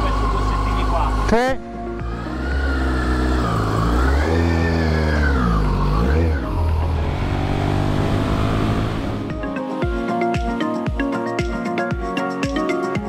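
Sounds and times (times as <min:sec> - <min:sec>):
motorcycle engine revving and idling: 0:00.0 - 0:09.4.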